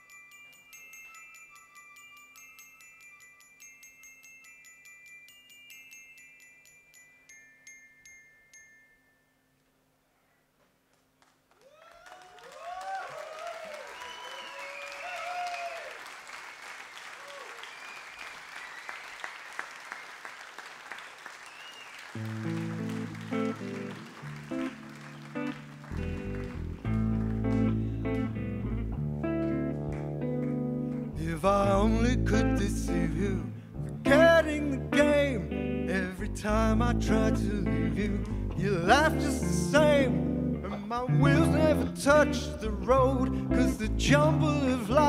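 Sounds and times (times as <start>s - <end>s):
audience applauding and cheering: 11.2s - 28.4s.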